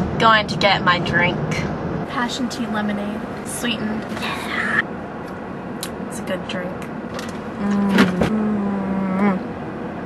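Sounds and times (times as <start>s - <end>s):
woman humming mm-hmm: 7.6s - 9.5s.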